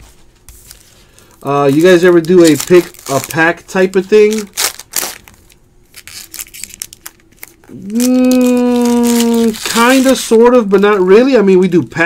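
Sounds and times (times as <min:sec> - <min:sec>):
foil wrapper crinkling: 0:00.6 - 0:11.0.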